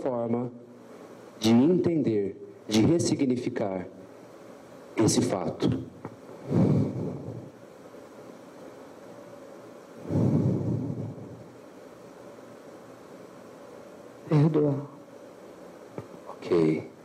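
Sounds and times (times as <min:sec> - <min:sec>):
muffled breaths into microphone: 0:06.2 - 0:07.6, 0:09.9 - 0:11.6.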